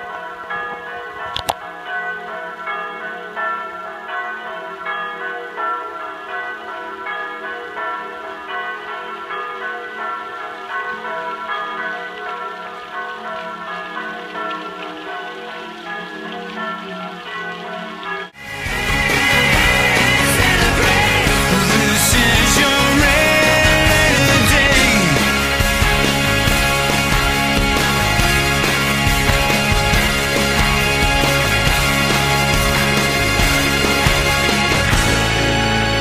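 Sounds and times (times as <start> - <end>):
church bells ringing: 0.0 - 36.0.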